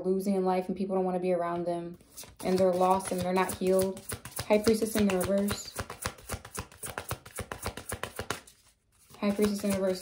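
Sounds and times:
cards being shuffled: 2.0s - 10.0s.

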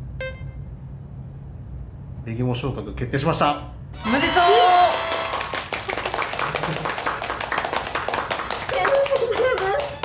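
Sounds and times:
people clapping: 4.1s - 10.0s.

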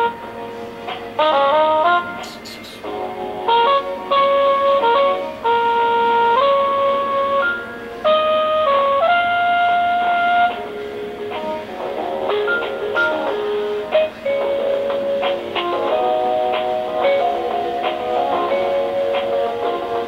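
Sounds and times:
hold music through phone speaker: 0.0s - 20.0s.

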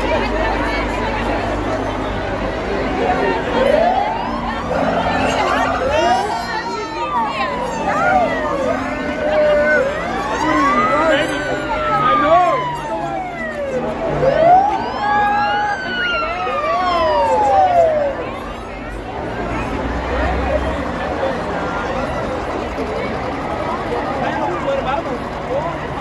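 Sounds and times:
crowd chatter and shouting: 0.0s - 26.0s
police sirens wailing: 0.0s - 26.0s.

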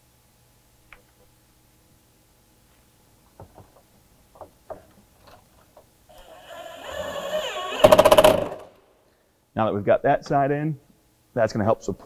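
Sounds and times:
cordless drill motor whine: 6.1s - 8.7s
rapid clicking of drill clutch: 6.2s - 8.7s.

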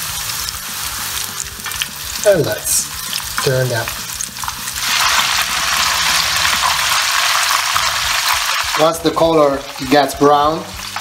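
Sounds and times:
oil sizzling in a pan: 0.0s - 11.0s.

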